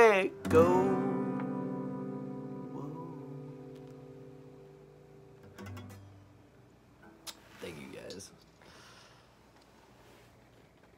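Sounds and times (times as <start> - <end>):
acoustic guitar chord ringing: 0.0 - 7.2
guitar string noise clicks: 5.4 - 6.2.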